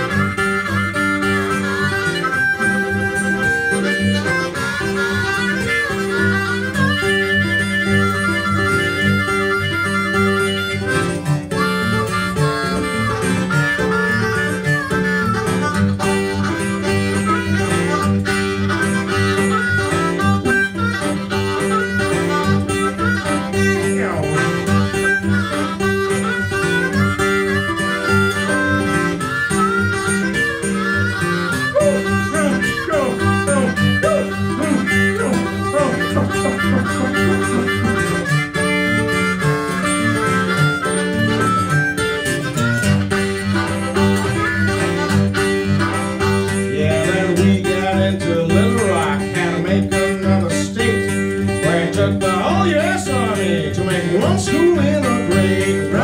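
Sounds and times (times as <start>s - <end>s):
blues harmonica solo: 0.0s - 56.0s
repeating guitar accompaniment: 0.0s - 56.0s.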